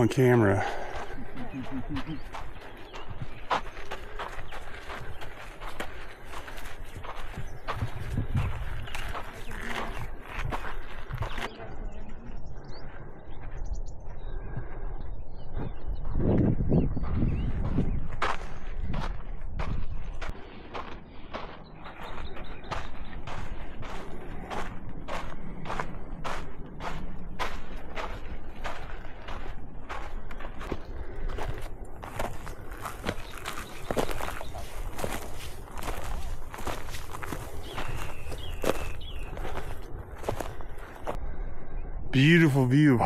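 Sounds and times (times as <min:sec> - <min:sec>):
footsteps on gravelly dirt trail: 0:00.0 - 0:41.2, 0:42.2 - 0:43.0.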